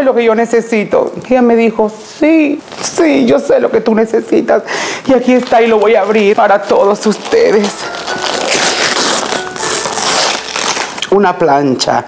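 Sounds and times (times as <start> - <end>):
wrapping paper tearing: 2.7 - 3.4, 5.1 - 11.2.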